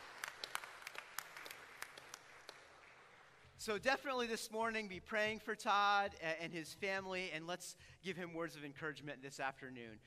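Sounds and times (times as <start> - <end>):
congregation applause: 0.0 - 3.6.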